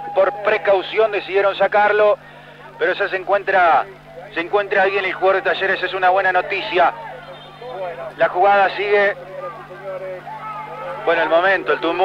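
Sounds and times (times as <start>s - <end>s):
low electrical hum: 0.0s - 12.0s
faint distant voices: 2.1s - 12.0s.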